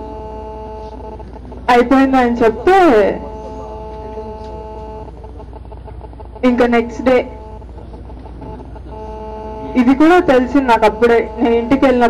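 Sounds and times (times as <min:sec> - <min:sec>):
electrical mains hum: 0:00.0 - 0:12.0
woman's voice: 0:01.7 - 0:03.3, 0:06.4 - 0:07.4, 0:09.7 - 0:12.0.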